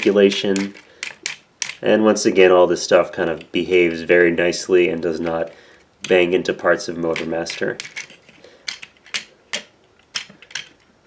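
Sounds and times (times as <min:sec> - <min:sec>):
plastic toy joints clicking: 0:00.0 - 0:01.8, 0:07.1 - 0:10.9.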